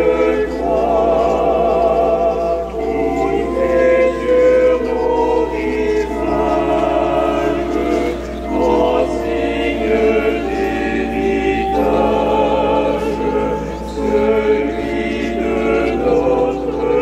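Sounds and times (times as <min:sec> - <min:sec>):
church organ chords: 0:00.0 - 0:17.0.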